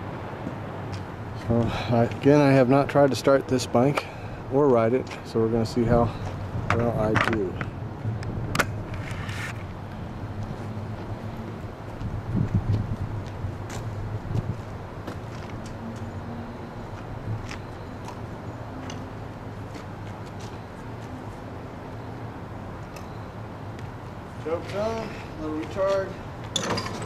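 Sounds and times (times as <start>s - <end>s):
footsteps: 8.9s - 16.1s, 16.9s - 21.5s.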